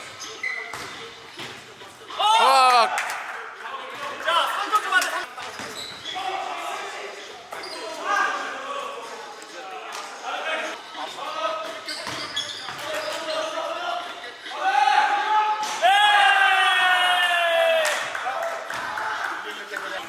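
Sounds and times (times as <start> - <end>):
players calling out: 2.1 - 3.0
person shouting: 2.2 - 2.9.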